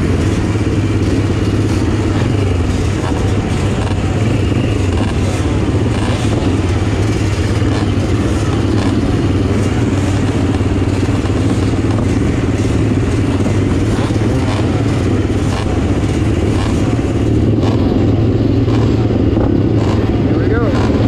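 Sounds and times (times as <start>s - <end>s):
dirt bike engines idling: 0.0s - 21.0s.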